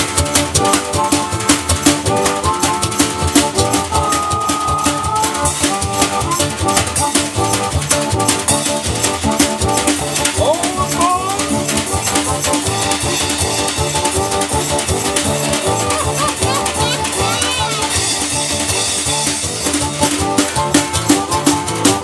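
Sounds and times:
drum kit beat: 0.0s - 22.0s
harmonica solo: 4.0s - 6.4s.

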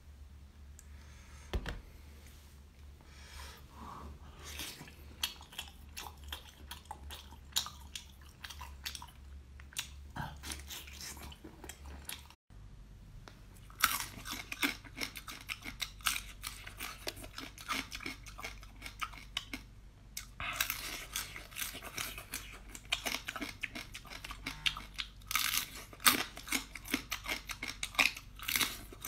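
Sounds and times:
chewing crunchy crab shells: 4.5s - 12.4s, 13.6s - 29.0s.

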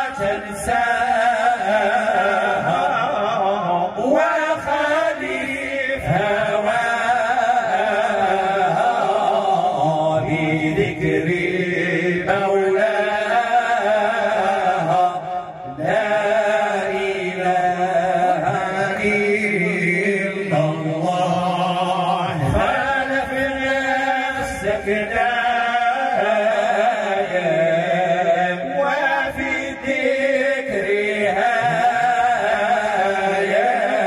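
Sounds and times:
man chanting devotional praise: 0.0s - 34.0s.

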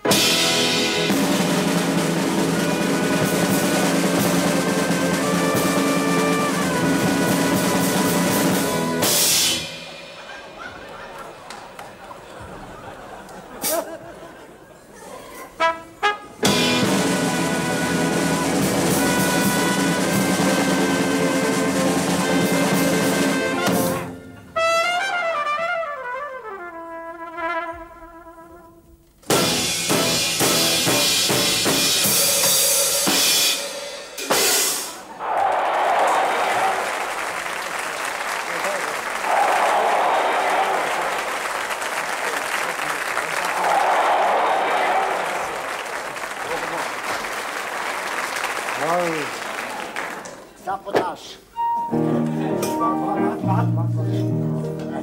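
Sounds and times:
big band with drums and brass: 0.0s - 14.0s, 15.4s - 35.1s
audience laughter: 9.9s - 15.7s
audience applause: 10.6s - 14.7s, 35.0s - 50.6s.

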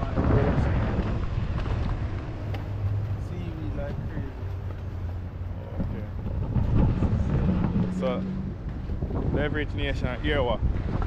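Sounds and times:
motorboat engine hum: 0.0s - 9.9s
wind on microphone: 0.0s - 11.0s.

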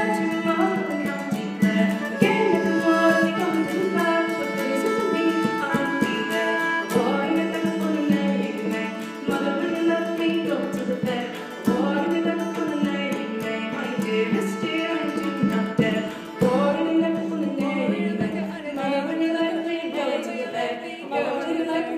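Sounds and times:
fiddle playing a flowing tune: 0.0s - 17.4s.

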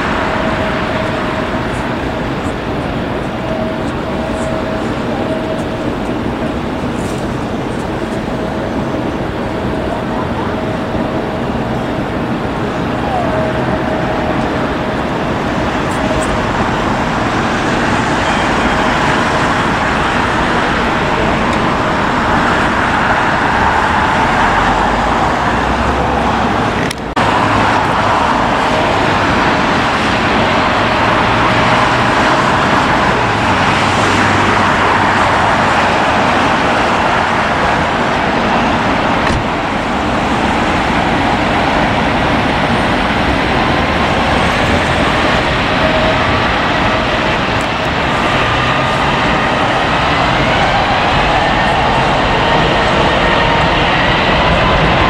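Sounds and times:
airliner jet engines: 0.0s - 55.0s
road traffic: 0.0s - 55.0s.

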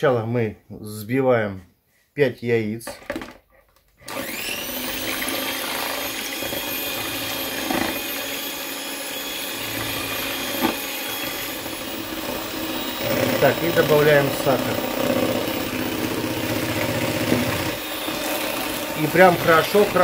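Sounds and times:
electric hand mixer whining: 4.0s - 20.0s.

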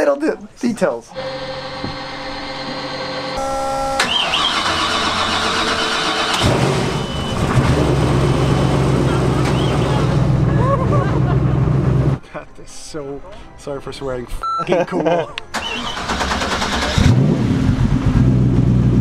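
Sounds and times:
boat engines starting: 1.1s - 12.2s, 15.5s - 17.4s
boat engine low rumble: 6.8s - 12.2s.

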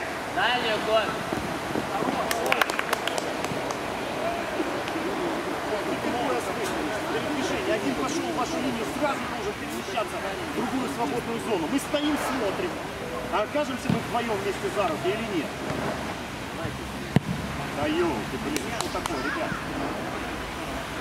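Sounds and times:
background rush of noise: 0.0s - 21.0s
players shouting and calling: 0.0s - 21.0s.

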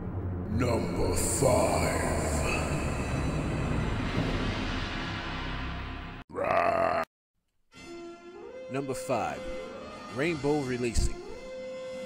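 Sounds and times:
dense rumble: 0.0s - 6.2s.

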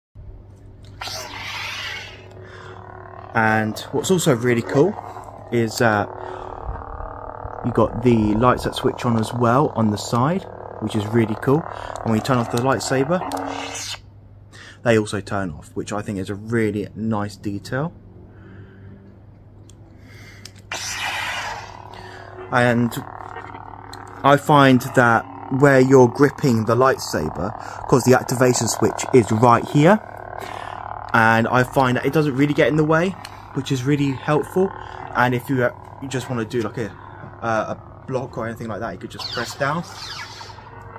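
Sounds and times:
low electric hum: 0.2s - 40.9s
lightsaber ignition rush: 0.9s - 14.0s, 20.6s - 40.9s
faint clicks: 19.0s - 20.7s.

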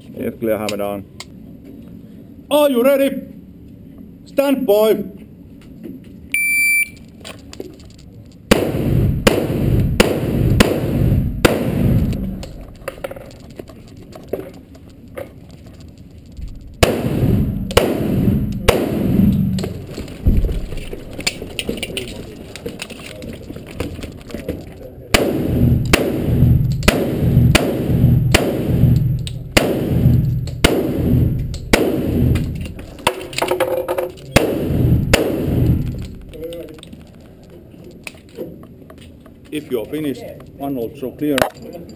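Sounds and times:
shot timer beep: 6.3s - 7.0s
pistol shots indoors: 8.5s - 12.5s, 16.8s - 19.7s, 25.1s - 32.8s, 34.4s - 36.1s.

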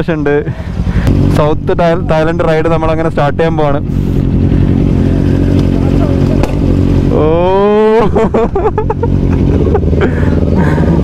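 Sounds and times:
motorcycle engines idling: 0.0s - 11.0s.

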